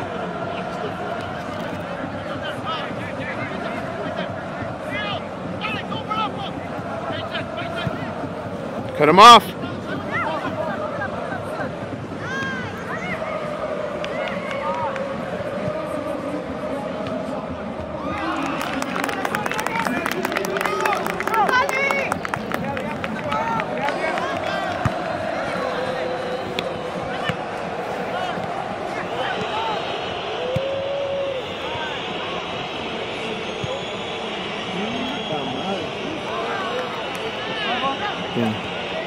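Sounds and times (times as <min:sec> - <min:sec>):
spectators shouting: 0:09.0 - 0:39.0
spectators clapping: 0:13.9 - 0:15.2, 0:18.0 - 0:25.8, 0:33.9 - 0:39.0.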